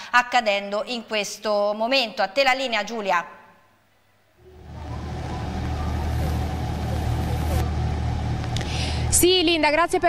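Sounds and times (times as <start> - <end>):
low engine rumble: 4.4 - 10.0.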